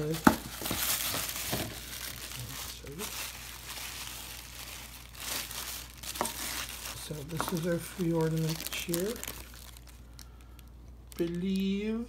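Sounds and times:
tissue paper crinkling: 0.0 - 11.7.

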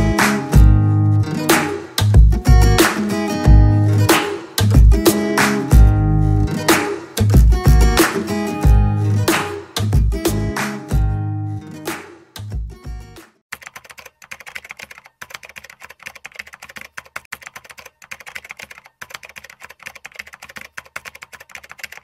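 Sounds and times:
background music: 0.0 - 13.4
computer keyboard typing: 13.5 - 22.0.

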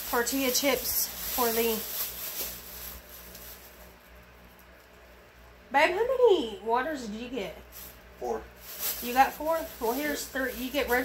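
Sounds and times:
groceries handling noise: 0.0 - 5.0, 7.6 - 11.0.

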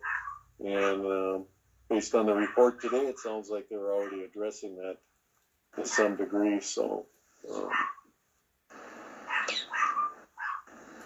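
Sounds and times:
dog barking: 0.0 - 1.1, 2.3 - 4.3, 5.8 - 6.2, 7.5 - 8.1, 9.2 - 10.8.

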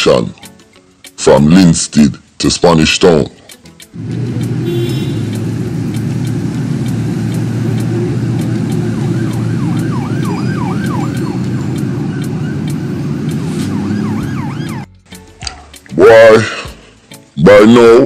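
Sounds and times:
siren wailing: 6.1 - 14.9.

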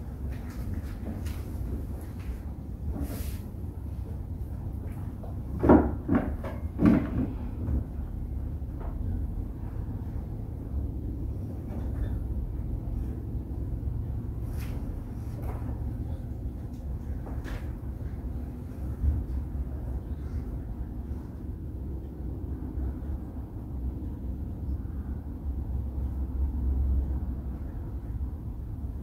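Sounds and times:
steady low hum: 0.0 - 29.0
objects knocking and clunking: 5.2 - 8.0.

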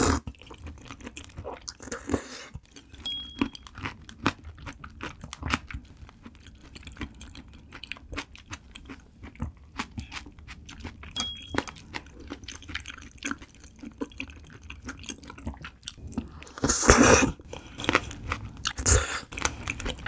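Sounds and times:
close chewing with wet clicks: 0.2 - 16.6, 17.4 - 20.0
chopsticks clinking on plate: 11.2 - 11.8.

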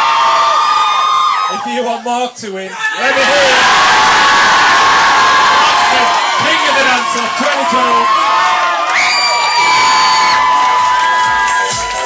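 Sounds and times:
crowd cheering: 0.0 - 1.9, 2.7 - 12.0
high-pitched scream: 2.7 - 12.0
dance track beat: 9.4 - 12.0.

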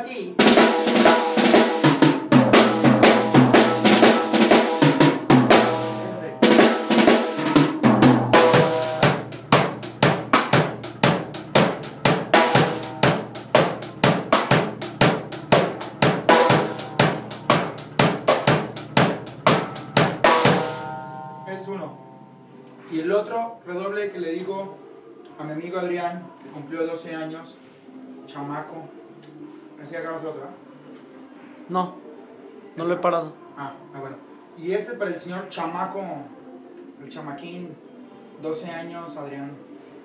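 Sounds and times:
drum kit fills with sticks: 0.4 - 22.6.

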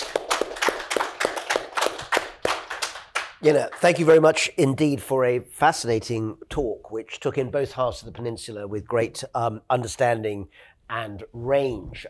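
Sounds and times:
small audience applauding: 0.0 - 4.3.

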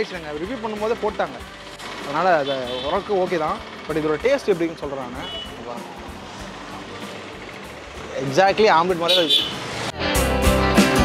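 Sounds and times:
background music: 0.0 - 11.0
street noise: 0.0 - 11.0.

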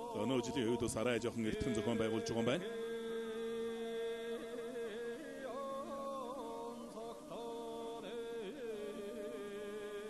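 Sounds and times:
person chanting long notes: 0.0 - 10.0.

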